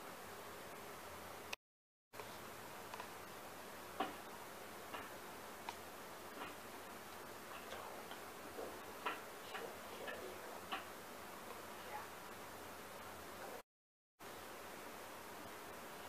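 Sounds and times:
steady background hiss: 0:02.2 - 0:13.6
small clicks and ticks: 0:02.9 - 0:03.1.

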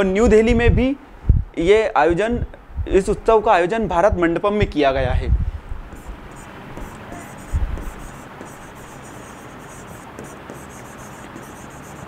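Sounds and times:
background hiss: 0:00.0 - 0:12.0
stylus scratching and tapping screen: 0:05.9 - 0:12.0.

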